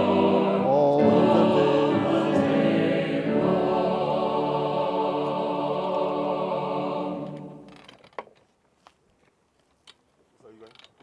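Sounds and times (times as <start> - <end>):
ratchet creak: 10.6 - 11.0.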